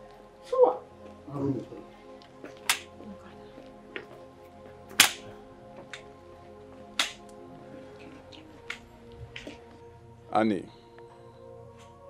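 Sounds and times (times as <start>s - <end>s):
dramatic film music: 0.0s - 12.0s.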